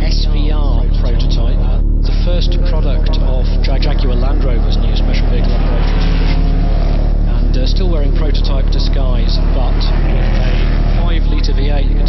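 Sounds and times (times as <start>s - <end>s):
background music: 0.0s - 12.0s
engine running hard: 0.0s - 12.0s.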